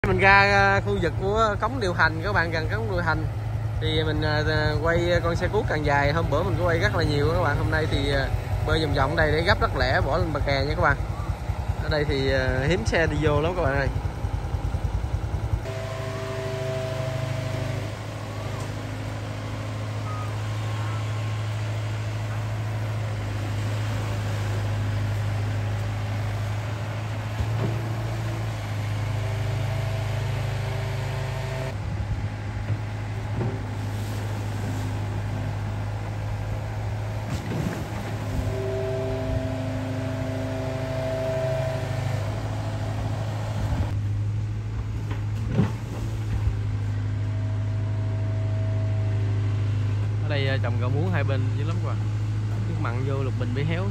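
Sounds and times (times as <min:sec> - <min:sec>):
excavator diesel engine drone: 0:00.0 - 0:53.9
hydraulic whine: 0:14.8 - 0:44.1, 0:45.0 - 0:53.9.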